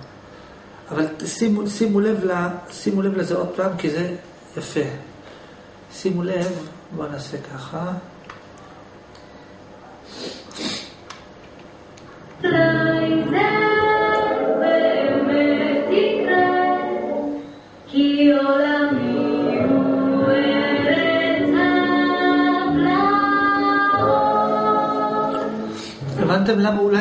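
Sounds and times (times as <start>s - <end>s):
woman singing slow song: 12.4s - 26.3s.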